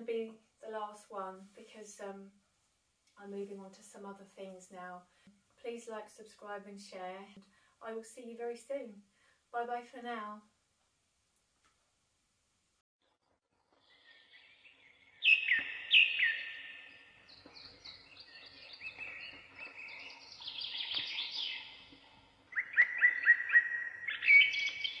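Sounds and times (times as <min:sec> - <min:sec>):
songbirds singing: 0:13.8 - 0:25.0.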